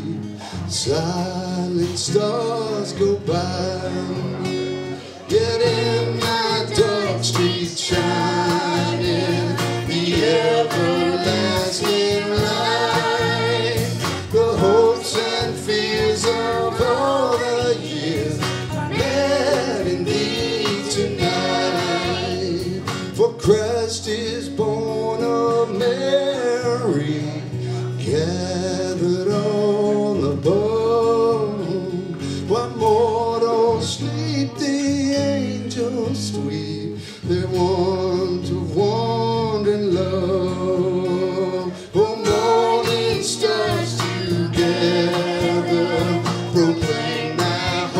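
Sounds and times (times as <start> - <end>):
acoustic guitar strumming: 0.0 - 47.9
man singing: 0.0 - 47.9
woman and girl singing along: 5.4 - 22.8, 41.4 - 47.9.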